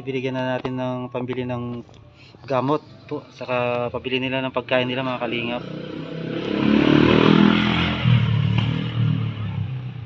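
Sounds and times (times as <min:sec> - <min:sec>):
motorcycle passing by: 0:04.8 - 0:10.0.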